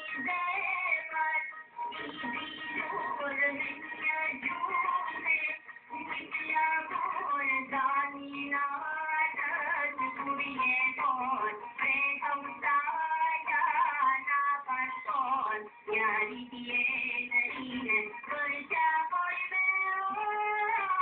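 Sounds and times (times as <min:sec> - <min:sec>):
high voices singing muffled: 0:00.0 - 0:21.0.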